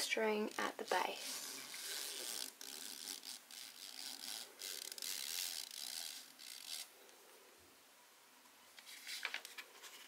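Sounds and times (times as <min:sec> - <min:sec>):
string scraping against paper: 0:00.0 - 0:07.2, 0:08.8 - 0:10.0.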